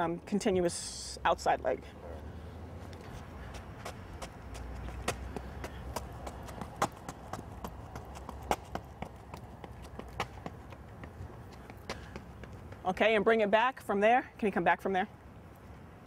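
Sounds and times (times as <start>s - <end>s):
footsteps on rubber track: 2.9s - 13.3s.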